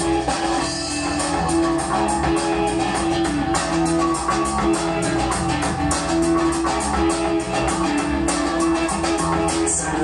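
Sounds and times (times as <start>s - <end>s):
drum kit steady beat: 0.0s - 10.0s
electric and acoustic guitars: 0.0s - 10.0s.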